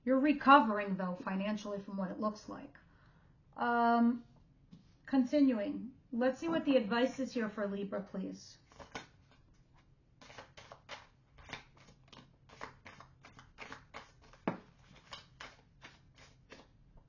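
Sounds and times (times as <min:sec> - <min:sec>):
cards being shuffled: 0:08.6 - 0:16.7.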